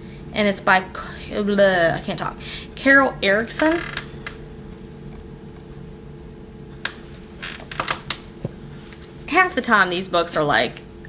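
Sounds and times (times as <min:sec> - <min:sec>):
steady low hum: 0:00.0 - 0:11.0
books tapping and rustling: 0:06.8 - 0:09.2.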